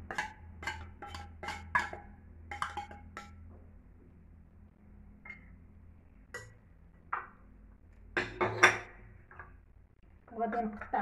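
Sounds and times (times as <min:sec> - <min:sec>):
metal spoon tapping tin can: 0:00.0 - 0:03.4.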